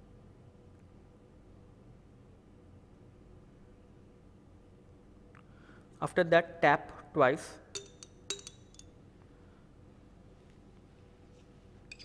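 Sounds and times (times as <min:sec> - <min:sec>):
glass pipette clinking on flask: 0:07.7 - 0:08.9.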